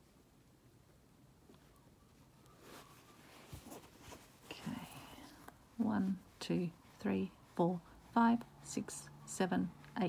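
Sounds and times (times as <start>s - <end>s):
thread handling with needle: 1.4s - 10.0s
woman speaking softly: 4.5s - 10.0s.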